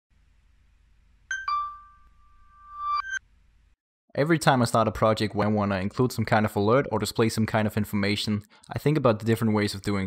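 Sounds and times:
smartphone notification chime: 1.3s - 3.2s.

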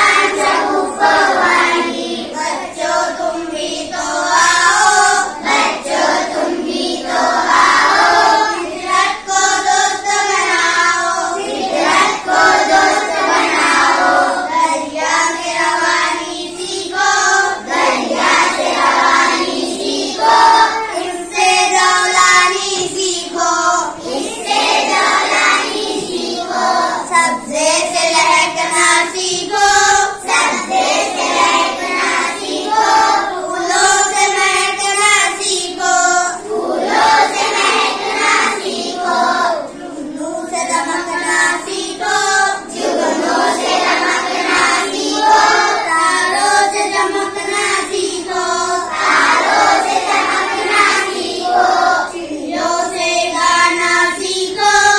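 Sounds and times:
child singing a poem: 0.0s - 54.9s.

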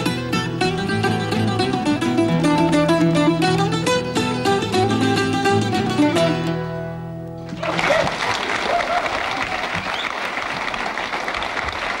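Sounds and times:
audience applauding: 7.5s - 12.0s.

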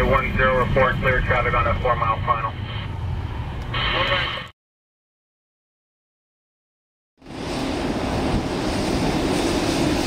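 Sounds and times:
air traffic control radio voice: 0.0s - 2.9s, 3.7s - 4.5s
low outdoor rumble: 0.0s - 4.4s.

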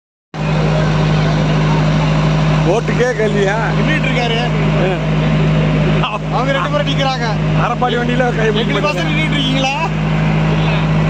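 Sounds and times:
outboard motor droning: 0.4s - 11.0s.

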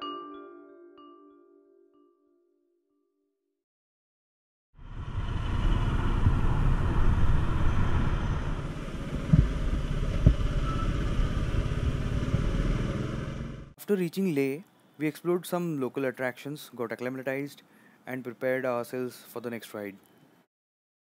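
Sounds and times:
wind rush on microphone: 4.8s - 13.2s
motorcycle engine running: 4.8s - 13.7s.

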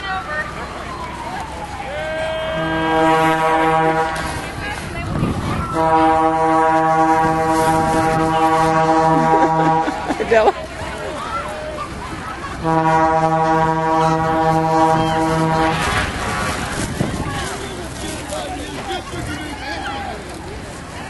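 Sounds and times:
voices chattering: 0.0s - 21.0s
horn blasts on a low note: 2.2s - 4.6s, 5.7s - 10.2s, 12.6s - 17.0s.

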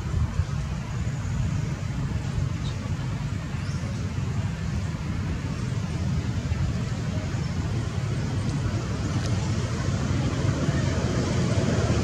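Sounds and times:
low rumbling background noise: 0.0s - 12.0s.

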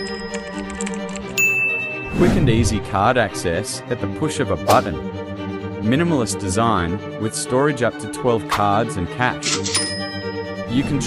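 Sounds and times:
keyboard typing clicks: 0.0s - 1.4s
background music: 0.0s - 11.0s.

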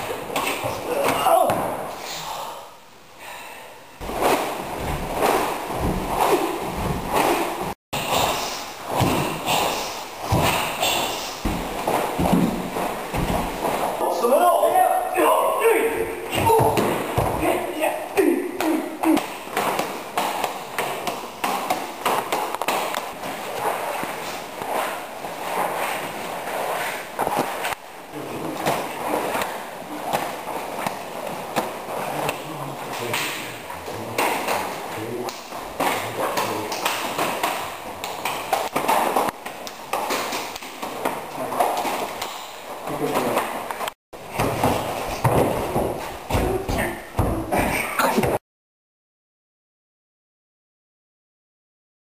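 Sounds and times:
body thudding on mat: 4.0s - 7.8s, 11.4s - 13.9s
forearms slapping and knocking: 4.0s - 14.0s, 18.6s - 24.8s, 28.6s - 48.4s
cloth rustling: 4.0s - 14.3s
person speaking: 14.0s - 19.4s
slaps of hands and forearms: 34.1s - 42.5s.

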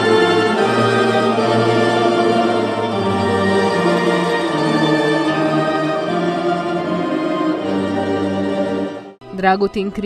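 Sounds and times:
plucked string orchestra chords: 0.0s - 10.0s.

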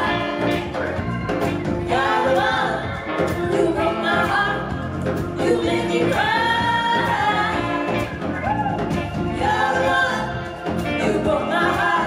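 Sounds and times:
live band: 0.0s - 12.0s
women singing together: 1.8s - 7.9s, 9.3s - 12.0s.

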